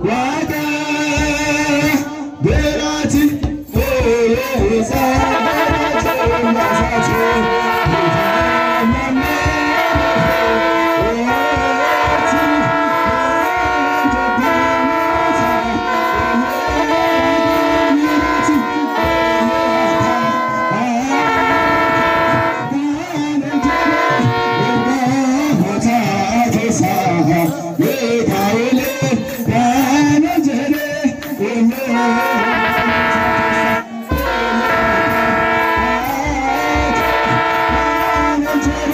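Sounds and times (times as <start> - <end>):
drum beats: 0.0 - 38.9.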